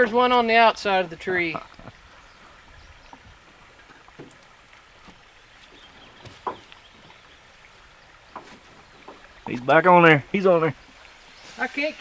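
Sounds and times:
water washing: 0:00.0 - 0:12.0
light knocks: 0:05.8 - 0:07.2, 0:08.3 - 0:09.7.

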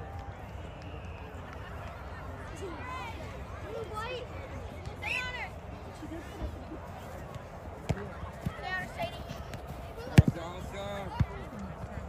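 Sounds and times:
soccer ball kick thuds: 0:07.1 - 0:12.0.

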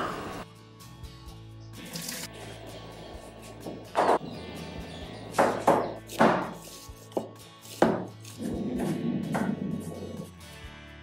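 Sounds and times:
cleaver chopping on wooden board: 0:05.4 - 0:06.6, 0:07.2 - 0:08.1.

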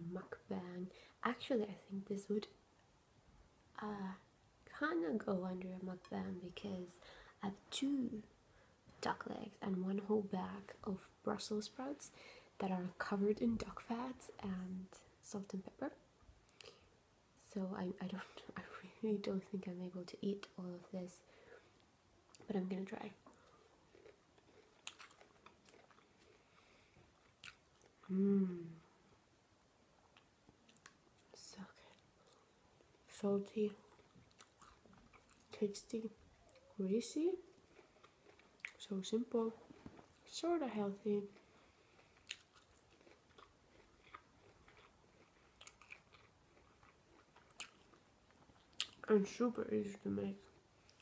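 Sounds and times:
close-mic chewing: 0:21.6 - 0:28.2, 0:30.0 - 0:49.5, 0:50.3 - 0:51.0
soft crunchy mouth clicks: 0:23.3 - 0:26.6, 0:27.2 - 0:28.8, 0:41.4 - 0:49.1.

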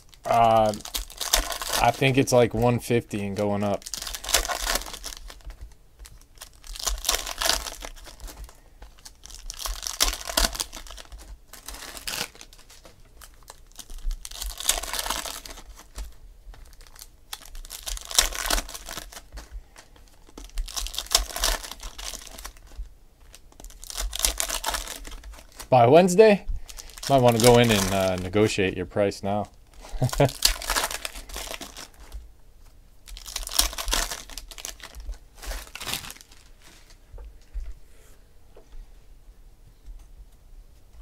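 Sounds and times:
foil wrappers tearing and crinkling: 0:00.0 - 0:28.7, 0:29.3 - 0:32.2, 0:33.0 - 0:37.0.

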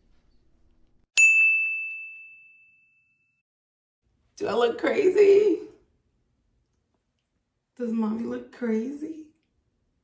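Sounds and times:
bright bell ding: 0:01.2 - 0:03.4.

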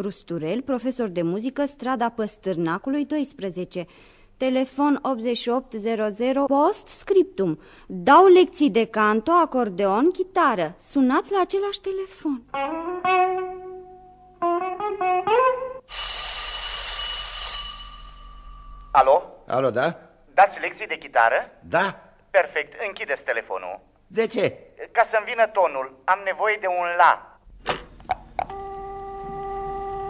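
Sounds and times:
plucked guitar notes: 0:12.5 - 0:15.8
telephone bell ringing: 0:15.9 - 0:18.9.

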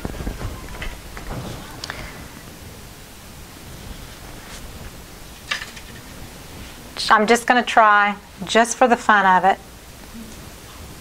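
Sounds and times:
low room noise hiss: 0:00.0 - 0:11.0.

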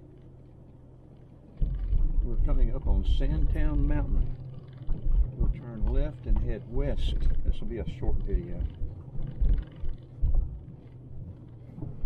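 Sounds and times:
vehicle rumble: 0:00.0 - 0:12.0
wind buffeting microphone: 0:01.5 - 0:12.0.

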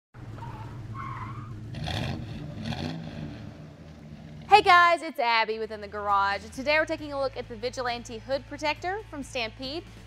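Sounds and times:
low engine rumble: 0:00.2 - 0:05.0
short squeal: 0:00.4 - 0:01.6.

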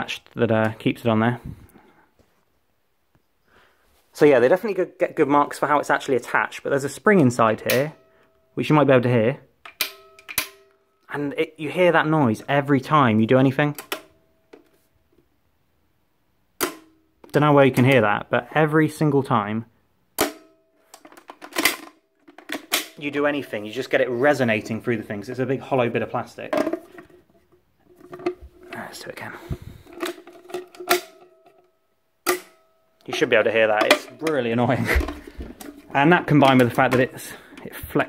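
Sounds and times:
spring ringing in hollow plastic: 0:09.7 - 0:10.8.

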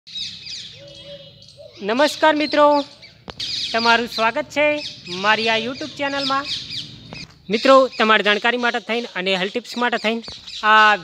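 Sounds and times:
small birds chirping: 0:00.1 - 0:11.0
man's voice: 0:01.8 - 0:03.0, 0:03.7 - 0:06.6, 0:07.4 - 0:11.0.

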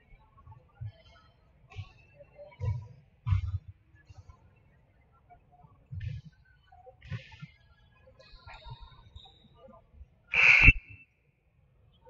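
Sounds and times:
high-pitched whistle blast: 0:10.4 - 0:11.0.

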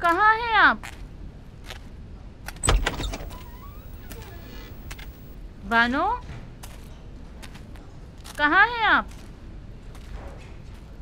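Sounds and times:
faint rising squeak: 0:02.6 - 0:05.4.

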